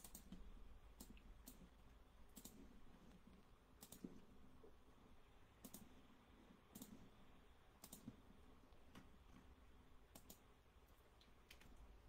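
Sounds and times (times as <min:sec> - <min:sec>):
faint sharp clicks: 0:02.3 - 0:02.6, 0:05.6 - 0:05.9, 0:07.8 - 0:09.1, 0:10.1 - 0:11.9.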